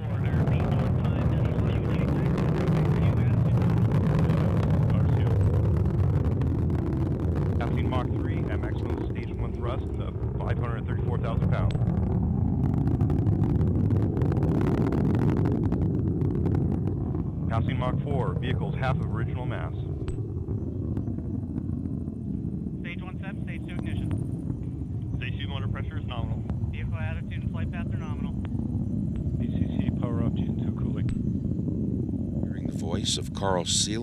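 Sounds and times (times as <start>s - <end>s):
faint voices: 0.0s - 5.6s, 7.6s - 11.7s, 17.4s - 19.8s, 22.8s - 24.4s, 25.2s - 28.4s, 29.3s - 31.1s, 32.4s - 34.0s
rocket motor rumble: 0.0s - 34.0s.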